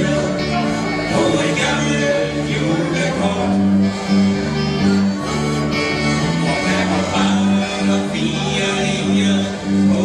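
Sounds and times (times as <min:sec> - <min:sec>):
country dance band playing: 0:00.0 - 0:10.0.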